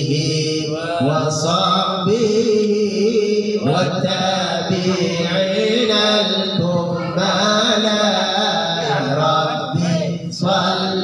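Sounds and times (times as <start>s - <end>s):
man singing devotional chant: 0.0s - 11.0s.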